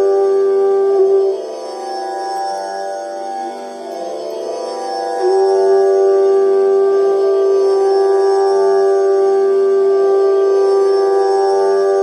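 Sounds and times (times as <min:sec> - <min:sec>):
bamboo flute note: 0:00.0 - 0:12.0
tanpura drone: 0:00.0 - 0:12.0.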